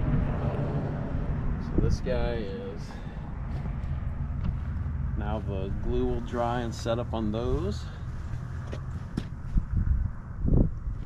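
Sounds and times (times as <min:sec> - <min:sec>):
footsteps on wood chips: 0:03.5 - 0:09.7.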